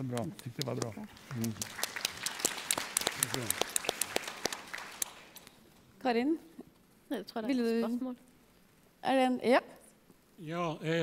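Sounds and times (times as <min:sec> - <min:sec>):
audience applause: 0:00.0 - 0:05.4.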